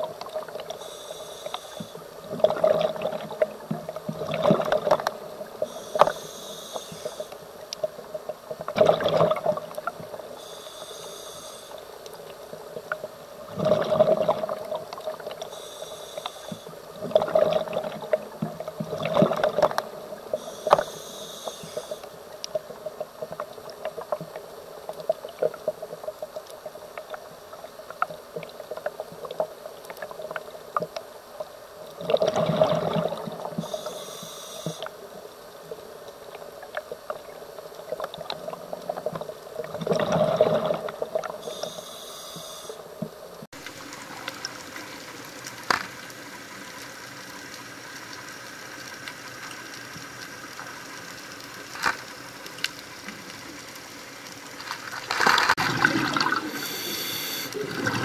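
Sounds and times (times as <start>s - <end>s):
faint clicks: 0.0s - 2.1s, 3.4s - 8.8s, 14.9s - 17.0s, 19.5s - 32.0s, 40.8s - 54.8s
hissing regulator inhalation: 0.8s - 2.0s, 5.6s - 7.4s, 10.4s - 11.8s, 15.5s - 16.8s, 20.3s - 22.1s, 33.6s - 34.9s, 41.4s - 42.8s, 56.3s - 57.9s
bubbling regulator exhalations: 13.5s - 15.3s, 17.0s - 19.8s, 32.0s - 33.8s, 39.6s - 41.8s, 55.5s - 58.0s.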